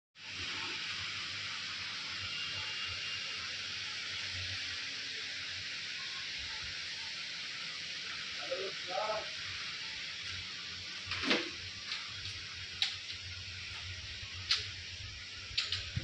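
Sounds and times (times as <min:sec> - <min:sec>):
steady hiss: 0:00.2 - 0:16.0.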